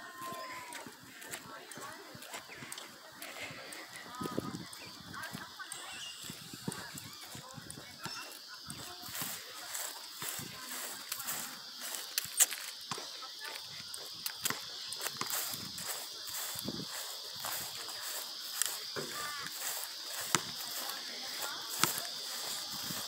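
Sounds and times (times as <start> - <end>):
distant voices: 0.0 - 23.0.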